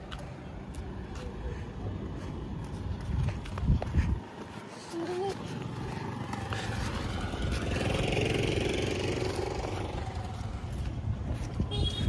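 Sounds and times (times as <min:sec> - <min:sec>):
motor vehicle passing by: 0:00.0 - 0:12.0.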